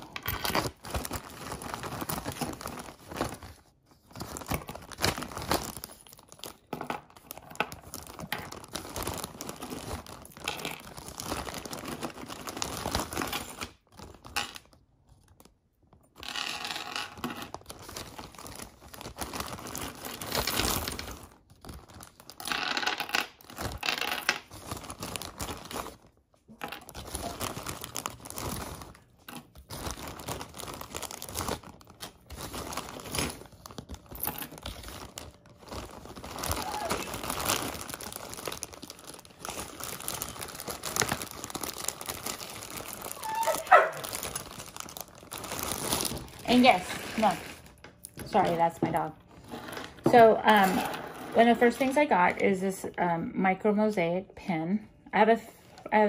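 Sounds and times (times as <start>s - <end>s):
jewelry rummaging: 0.0s - 14.8s, 16.0s - 52.0s
plastic bag crinkling: 0.0s - 52.3s.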